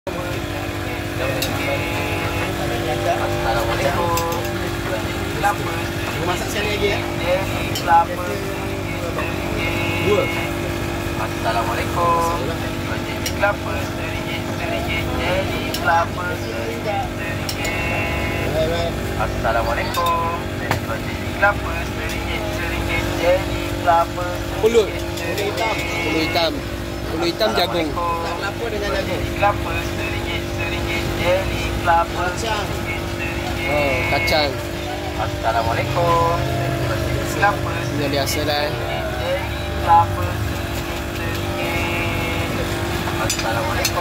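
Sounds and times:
people talking in background: 0.0s - 44.0s
gas stove burners roaring: 0.1s - 44.0s
low mechanical hum: 0.1s - 44.0s.

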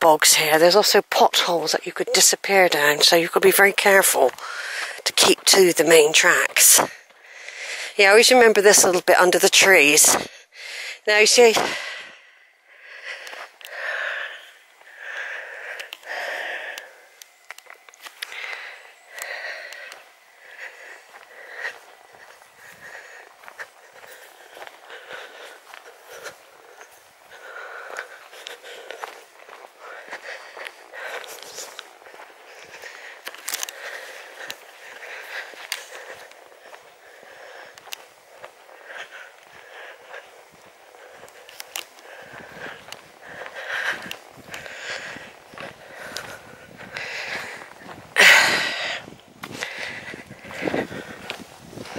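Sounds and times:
footsteps on dirt path: 0.0s - 51.9s
person breathing: 4.3s - 5.0s, 6.8s - 8.0s, 10.2s - 51.9s.

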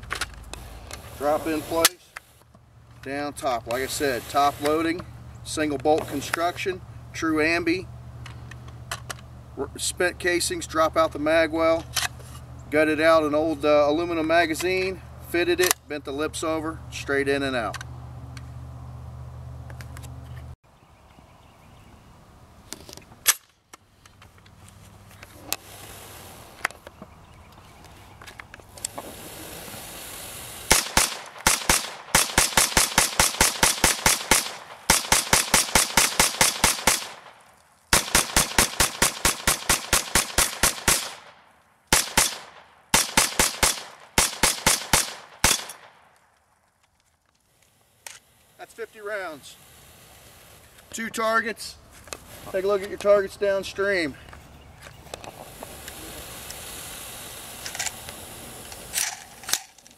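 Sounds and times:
rifle firing rapid shots: 30.7s - 41.3s, 41.9s - 46.0s.

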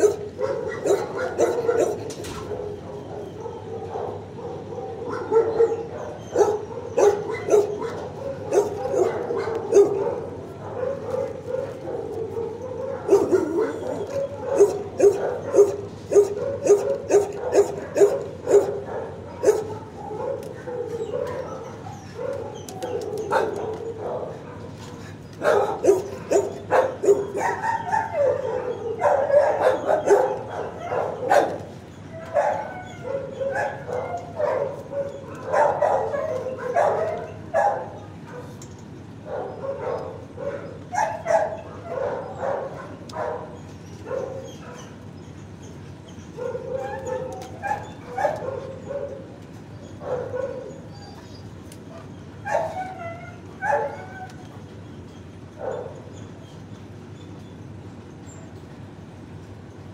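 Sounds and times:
dogs barking: 0.0s - 57.3s.

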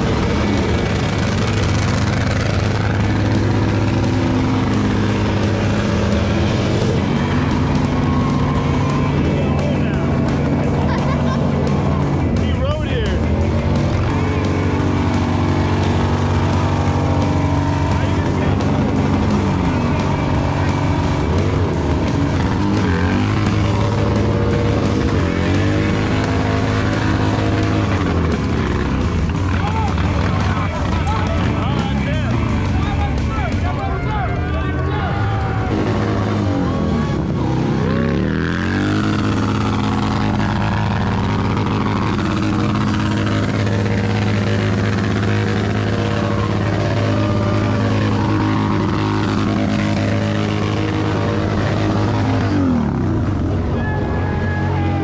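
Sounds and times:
loud music: 0.0s - 55.0s
motorcycle engine revving: 0.0s - 55.0s.

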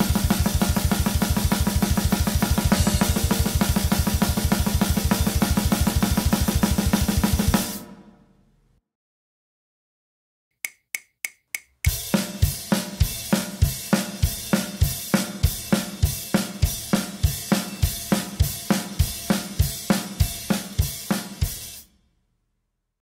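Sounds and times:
fast drum beat: 0.0s - 8.0s, 11.8s - 21.8s
bass drum accents: 0.0s - 8.2s
cymbal wash: 1.8s - 8.2s
drumstick count-in clicks: 10.6s - 12.1s.

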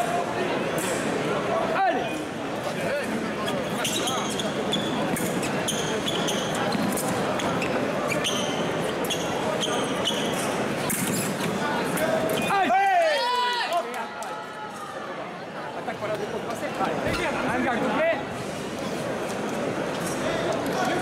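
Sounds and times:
murmur of voices in a hall: 0.0s - 21.0s
shoe squeaks: 3.4s - 11.6s, 12.2s - 12.6s.

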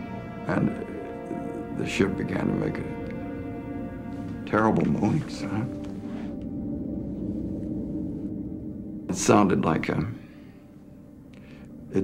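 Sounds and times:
low droning ambient music: 0.0s - 12.0s.

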